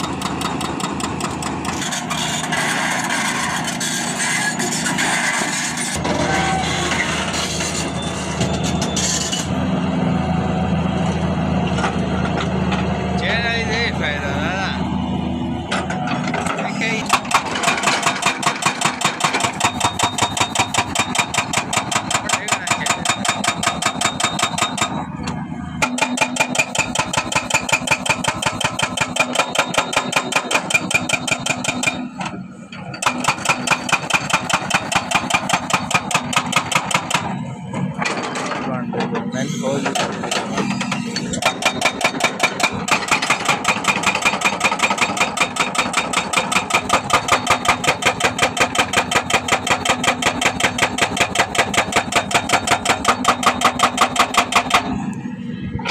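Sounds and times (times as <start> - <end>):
hydraulic breaker hammering rock: 0.0 - 3.8, 16.3 - 25.2, 25.8 - 37.4, 38.0 - 55.0
excavator diesel engine running: 0.0 - 55.9.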